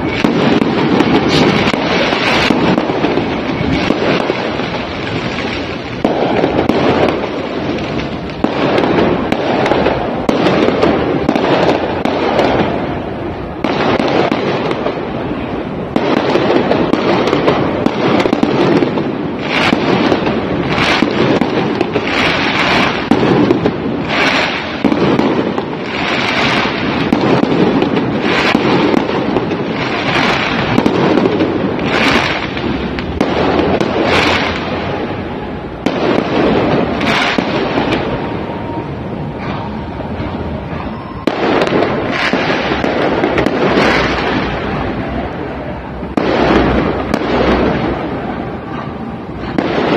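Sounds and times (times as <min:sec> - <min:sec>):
fireworks bursting: 0:00.0 - 0:49.9.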